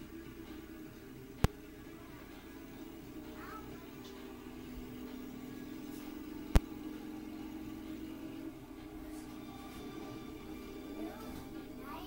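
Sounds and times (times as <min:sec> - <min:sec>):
engine hum through tv speaker: 0:00.0 - 0:12.0.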